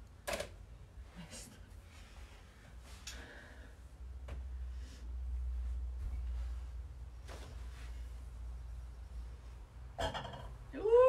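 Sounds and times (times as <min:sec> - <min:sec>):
faint rustle: 0:01.0 - 0:09.6.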